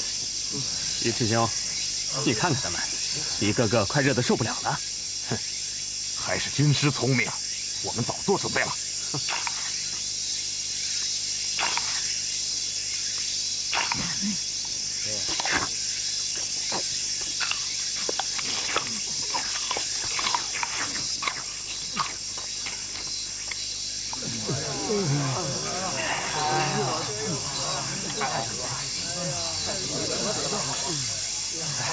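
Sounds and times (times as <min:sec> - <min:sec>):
high insect drone: 0:00.0 - 0:31.9
men grunting and sighing: 0:00.5 - 0:01.0, 0:13.9 - 0:14.4, 0:24.2 - 0:31.9.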